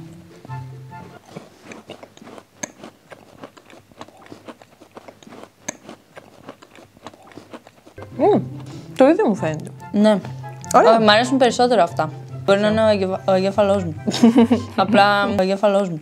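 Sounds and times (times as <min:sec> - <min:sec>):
faint background music: 0:00.0 - 0:04.6, 0:07.0 - 0:16.0
chewing crumbly cookies: 0:00.1 - 0:10.8.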